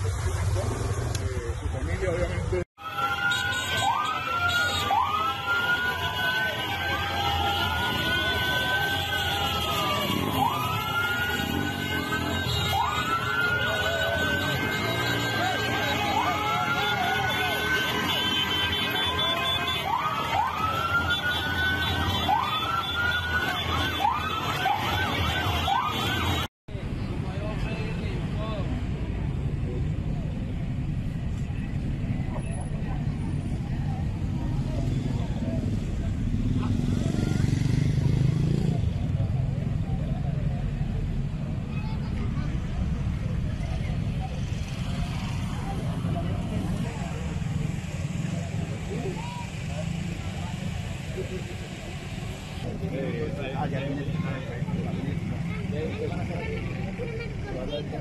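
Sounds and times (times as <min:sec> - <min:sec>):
crowd voices: 0:00.0 - 0:58.0
motorcycle and car engines rumbling: 0:00.0 - 0:58.0
street traffic: 0:00.0 - 0:58.0
sirens whooping: 0:02.8 - 0:26.5.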